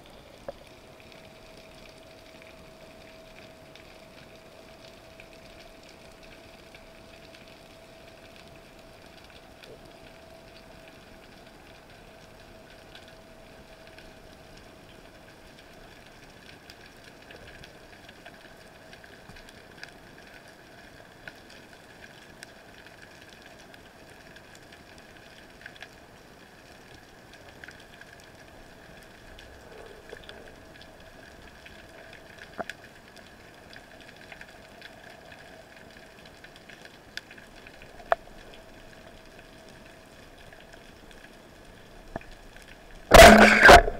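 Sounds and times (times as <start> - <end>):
low underwater hum: 0.0 - 43.9.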